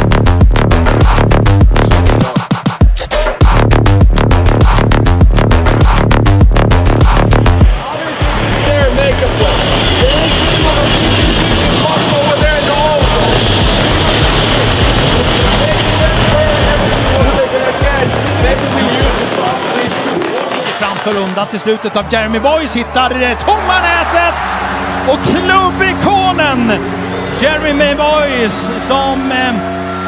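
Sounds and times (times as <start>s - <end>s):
electronic music beat: 0.0s - 30.0s.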